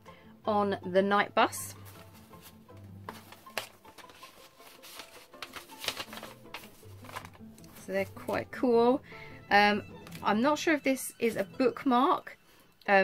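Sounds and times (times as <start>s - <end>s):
faint music: 0.0s - 13.0s
paper and card rustling: 1.7s - 8.4s.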